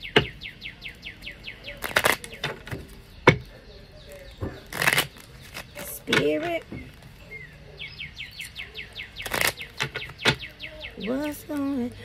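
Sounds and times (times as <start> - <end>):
songbird trilling: 0.0 - 2.4, 3.0 - 12.0.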